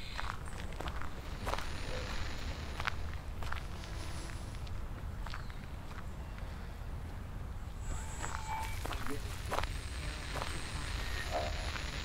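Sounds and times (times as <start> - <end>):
footsteps on twig-strewn ground: 0.0 - 6.1, 7.8 - 12.0.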